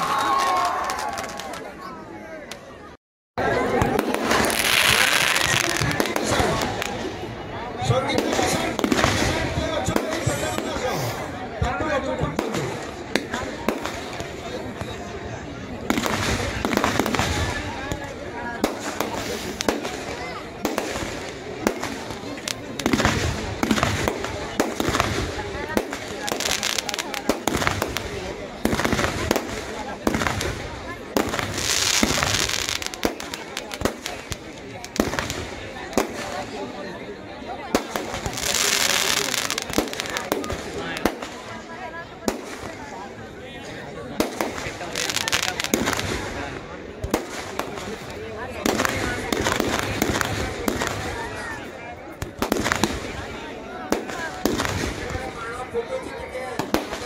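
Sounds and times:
fireworks bangs and crackles: 0:00.0 - 0:02.8, 0:03.4 - 0:57.0
fireworks hissing crackle: 0:03.8 - 0:11.4, 0:15.8 - 0:36.8, 0:37.7 - 0:43.4, 0:44.1 - 0:57.0.

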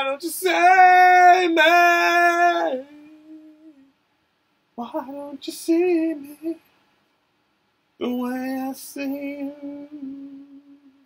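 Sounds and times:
man singing unaccompanied: 0:00.0 - 0:04.0, 0:04.8 - 0:06.7, 0:08.0 - 0:11.0.

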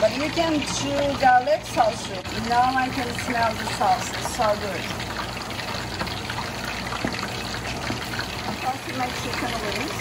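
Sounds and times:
sauce sloshing and simmering: 0:00.0 - 0:10.0
wooden spoon stirring sauce: 0:05.9 - 0:09.5.

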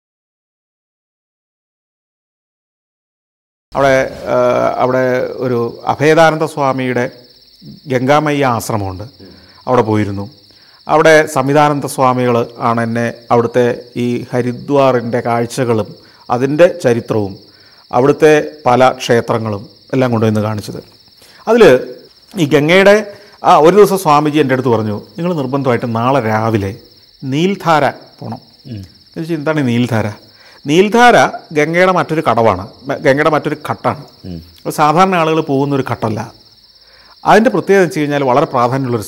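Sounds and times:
crickets chirring: 0:03.7 - 0:39.0
man speaking: 0:03.8 - 0:36.4, 0:37.2 - 0:39.0
man talking: 0:03.8 - 0:36.4, 0:37.2 - 0:39.0.

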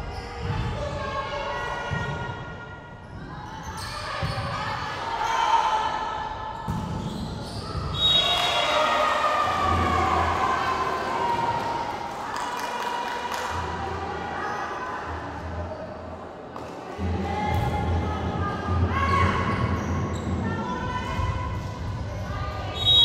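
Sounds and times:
players and spectators shouting: 0:07.9 - 0:12.0.

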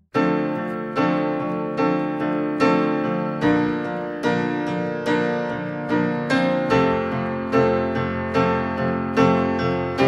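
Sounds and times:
piano music: 0:00.0 - 0:10.0.

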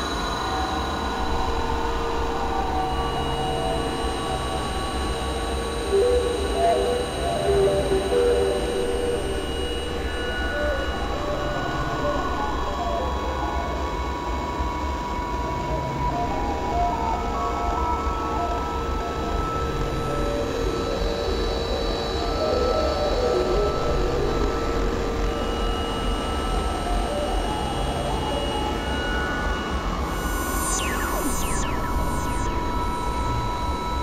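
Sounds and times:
electronic drone music: 0:26.6 - 0:34.0
low synthesizer throb: 0:30.1 - 0:34.0.

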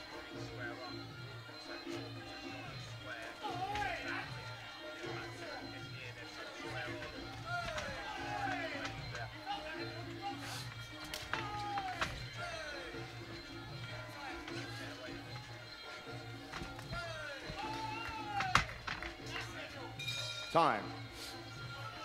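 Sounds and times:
wailing reed melody: 0:02.2 - 0:20.0
sharp slaps: 0:16.5 - 0:19.4.

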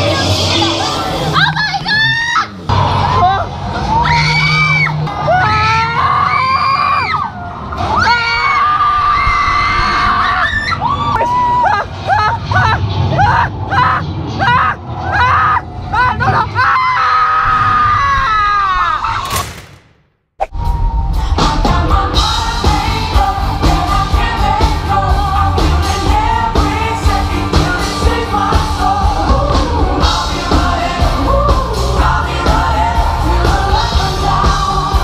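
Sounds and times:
ride soundtrack music: 0:00.0 - 0:05.8, 0:20.6 - 0:35.0
riders screaming: 0:02.1 - 0:19.2.

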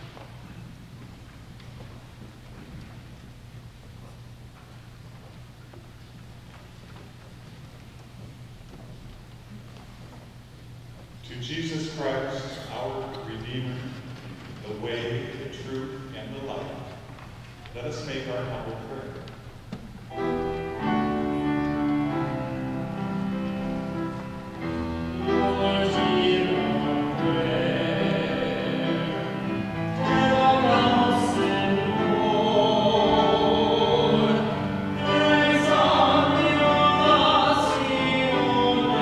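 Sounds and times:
low steady hum: 0:00.0 - 0:39.0
man intoning a prayer: 0:11.3 - 0:14.0, 0:14.6 - 0:17.1, 0:17.7 - 0:19.3
choir singing held notes: 0:20.1 - 0:39.0.

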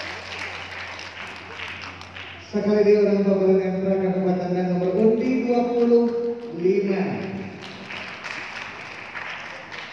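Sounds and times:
audience applauding: 0:00.0 - 0:02.4, 0:05.8 - 0:09.9.

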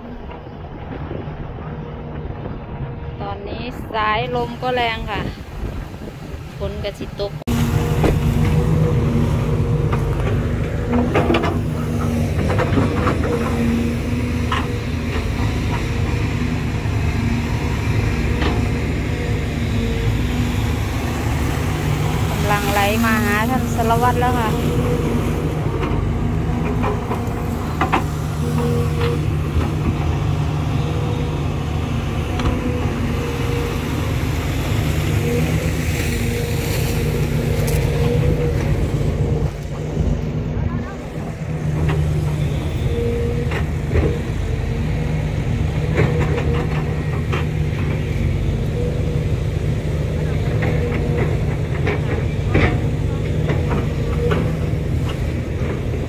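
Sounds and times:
excavator diesel engine running: 0:00.0 - 0:56.0.

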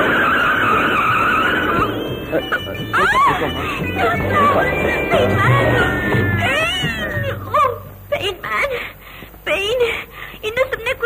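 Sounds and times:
woman wailing: 0:02.5 - 0:07.9.

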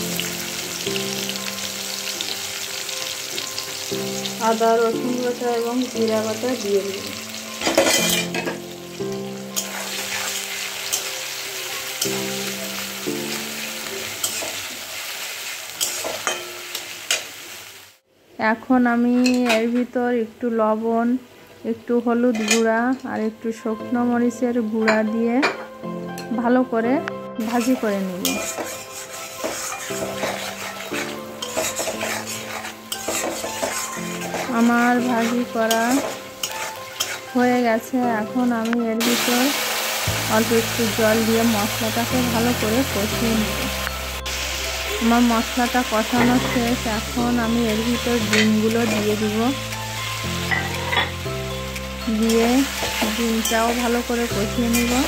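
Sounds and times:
onions sizzling in hot oil: 0:00.0 - 0:18.0, 0:27.4 - 0:55.0
metal spatula scraping pan: 0:07.6 - 0:08.6, 0:09.6 - 0:11.1, 0:14.1 - 0:14.7, 0:27.5 - 0:37.5, 0:50.5 - 0:51.2.

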